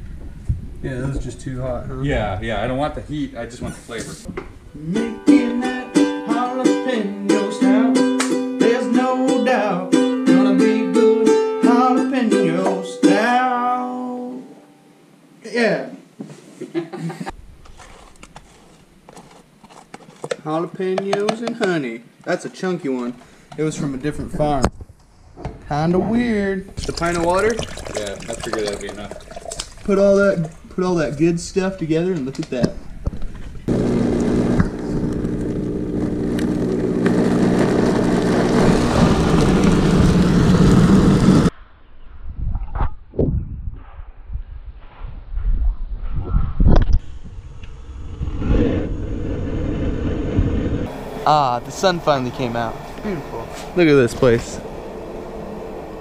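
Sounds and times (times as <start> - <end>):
man talking: 0.8 - 4.3, 20.4 - 24.7, 25.7 - 29.2, 29.8 - 32.8, 51.2 - 54.7
blender motor running: 33.7 - 41.5.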